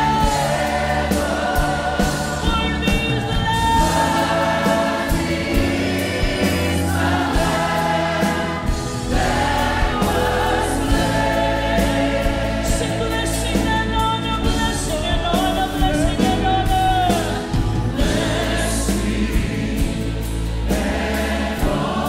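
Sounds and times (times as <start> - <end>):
choir singing held notes: 0.0 - 13.6, 17.1 - 22.0
instrumental backing with bass: 0.0 - 22.0.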